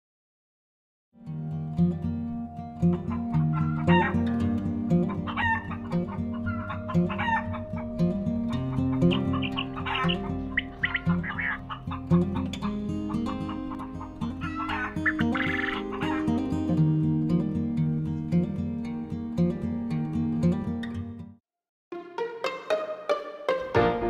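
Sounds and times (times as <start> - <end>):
upbeat acoustic guitar music: 1.2 - 21.4, 23.5 - 24.0
chickens clucking: 2.9 - 16.5
rooster crowing: 3.0 - 4.4, 5.1 - 12.0, 14.4 - 16.3.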